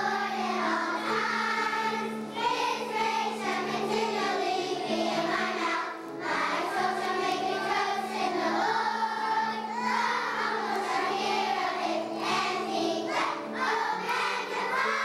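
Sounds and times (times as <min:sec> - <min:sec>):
children's choir singing: 0:00.0 - 0:15.0
sustained accompaniment notes: 0:00.0 - 0:15.0.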